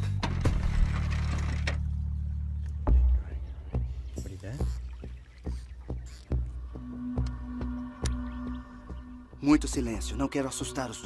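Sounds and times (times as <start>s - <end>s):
low steady drone: 0.2s - 11.0s
water movement: 0.8s - 11.0s.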